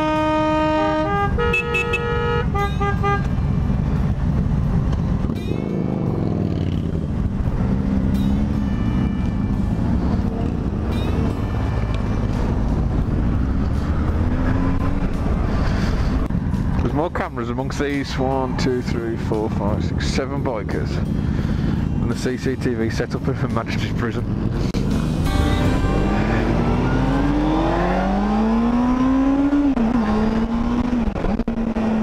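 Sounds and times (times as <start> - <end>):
horn playing a short tune: 0.0 - 3.3, 25.2 - 27.0
motorcycle engines running: 0.0 - 32.0.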